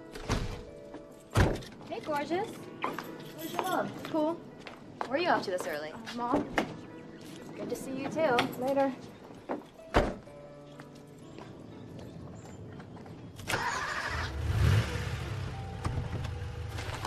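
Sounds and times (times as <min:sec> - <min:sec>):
film score music: 0:00.0 - 0:17.0
car engine starting and rumbling: 0:13.4 - 0:17.0.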